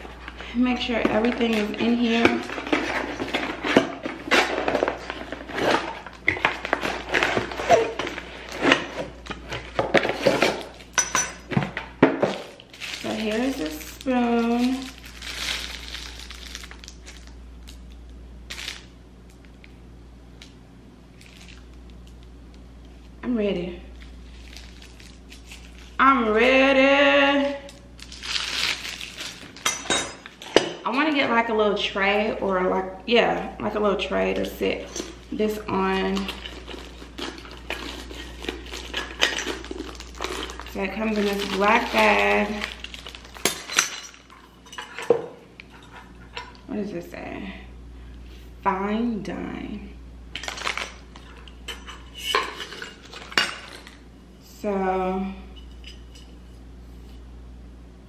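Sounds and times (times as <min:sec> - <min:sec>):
plastic sleeve crinkling: 0:00.0 - 0:11.0, 0:12.2 - 0:19.7, 0:21.1 - 0:23.1, 0:23.9 - 0:26.4, 0:27.7 - 0:30.4, 0:34.8 - 0:44.6, 0:50.3 - 0:51.5
woman's voice: 0:00.4 - 0:02.6, 0:13.0 - 0:15.0, 0:23.2 - 0:24.0, 0:26.0 - 0:27.8, 0:30.8 - 0:36.4, 0:40.7 - 0:42.8, 0:46.7 - 0:47.8, 0:48.6 - 0:50.0, 0:54.4 - 0:55.5.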